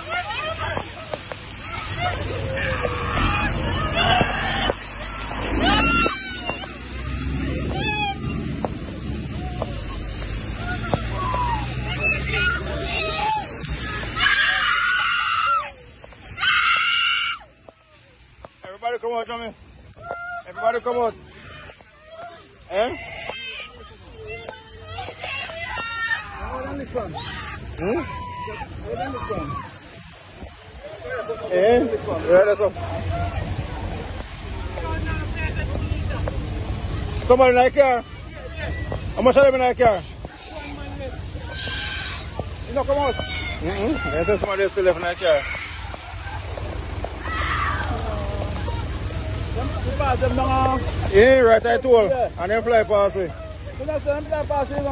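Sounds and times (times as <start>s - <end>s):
distant people shouting: 0.0s - 18.8s, 19.5s - 54.9s
woman screaming: 7.7s - 8.4s
steady low rumble: 19.5s - 54.9s.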